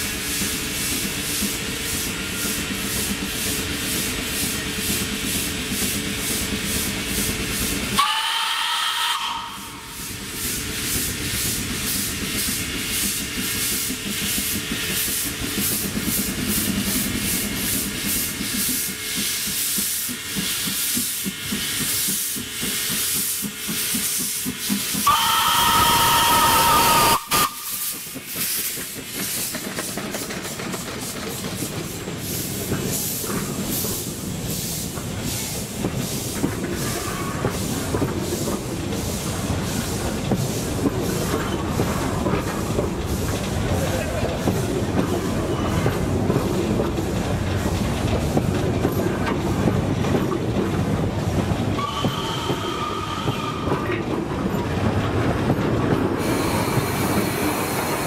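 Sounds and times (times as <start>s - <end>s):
steam locomotive exhaust beating: 0.0s - 58.0s
steam whistle blasts: 8.0s - 10.0s, 25.0s - 27.8s, 51.8s - 53.8s.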